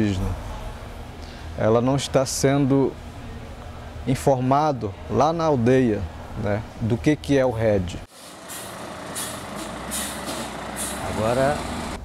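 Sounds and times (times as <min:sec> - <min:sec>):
hiss: 0:08.2 - 0:11.0.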